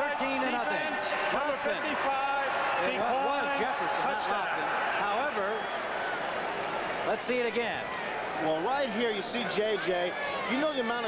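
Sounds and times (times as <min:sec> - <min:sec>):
man giving commentary: 0:00.0 - 0:05.6.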